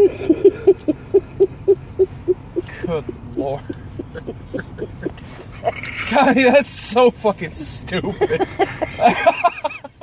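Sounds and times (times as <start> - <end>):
hearty laughter: 0.0 - 6.4, 8.0 - 10.0.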